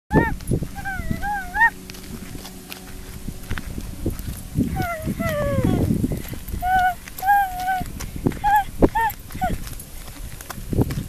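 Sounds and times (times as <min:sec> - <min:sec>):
toddler vocalizing: 0:00.1 - 0:01.7, 0:04.7 - 0:05.9, 0:06.6 - 0:09.6.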